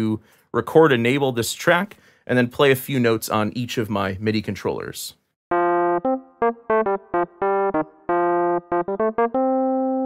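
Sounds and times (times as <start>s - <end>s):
electric piano chords and notes: 5.5s - 10.0s.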